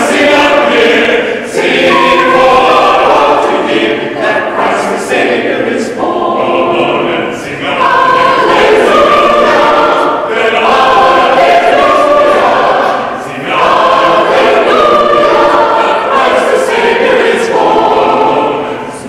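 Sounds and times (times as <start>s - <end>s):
mixed choir singing: 0.0s - 19.0s.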